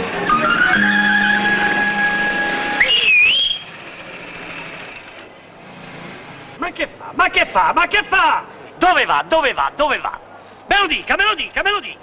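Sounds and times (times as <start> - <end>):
street background noise: 0.0 - 12.0
pea whistle blast: 0.3 - 3.8.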